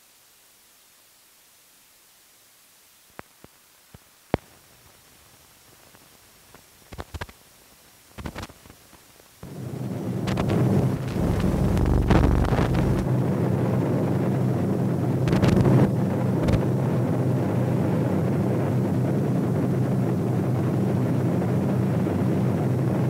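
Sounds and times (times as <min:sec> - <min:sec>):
low droning roar: 0:09.4 - 0:23.0.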